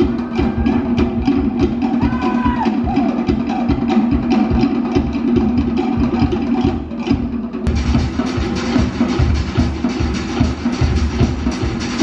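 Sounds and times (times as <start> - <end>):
wooden log drums beating: 0.0 - 8.1
deeper drums: 0.0 - 12.0.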